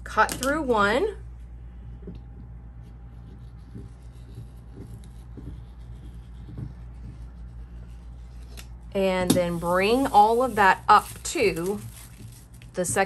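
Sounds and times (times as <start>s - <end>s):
low background hum: 0.0s - 13.0s
paper rustling: 9.5s - 13.0s.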